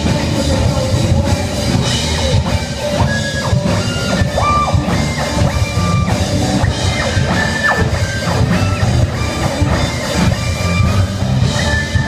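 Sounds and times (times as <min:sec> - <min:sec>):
rock band playing live: 0:00.0 - 0:12.0
squealing guitar note: 0:02.9 - 0:12.0.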